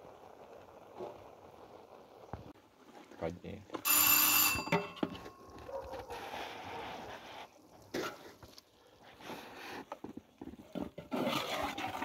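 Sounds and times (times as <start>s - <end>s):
food sizzling in hot pot: 0.0s - 12.0s
metal pot ringing: 3.8s - 5.6s.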